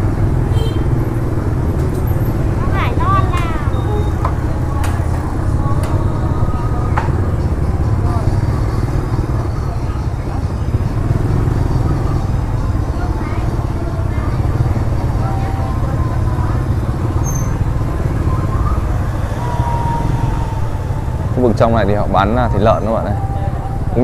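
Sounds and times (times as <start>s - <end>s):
motorbike engines passing: 0.0s - 24.0s
indistinct chatter: 1.2s - 24.0s.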